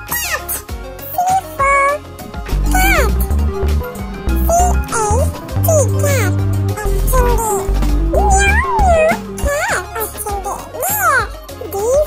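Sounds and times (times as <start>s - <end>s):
background music with bass beat: 2.2s - 9.4s.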